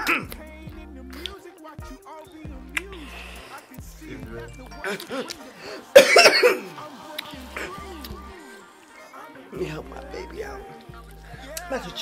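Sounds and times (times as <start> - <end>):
person coughing: 0.0 - 0.4, 6.0 - 6.7
faint song playing: 0.0 - 12.0.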